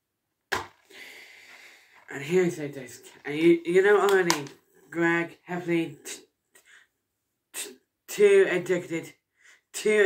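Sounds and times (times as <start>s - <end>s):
person breathing sharply: 0.8s - 2.0s.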